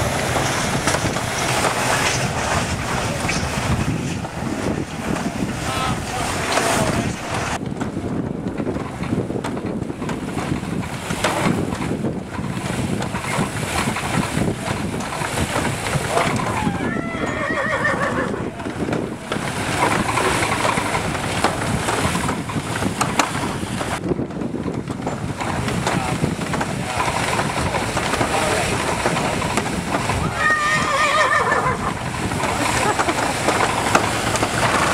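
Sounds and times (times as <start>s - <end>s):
threshing machine rattling: 0.0s - 34.9s
horse whinnying: 16.4s - 18.6s, 30.2s - 32.0s.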